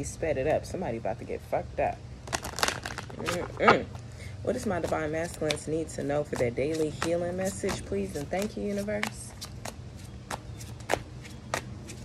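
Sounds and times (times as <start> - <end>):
cards being shuffled: 2.3 - 4.0, 6.7 - 9.7.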